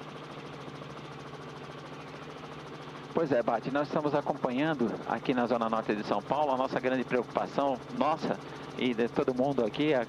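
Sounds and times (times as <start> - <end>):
helicopter rotor drone: 0.0 - 10.0.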